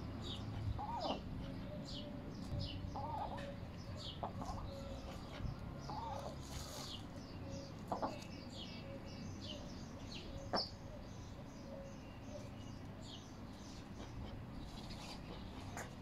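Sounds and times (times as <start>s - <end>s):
birds chirping: 0.0s - 16.0s
low clucking bird calls: 0.0s - 16.0s.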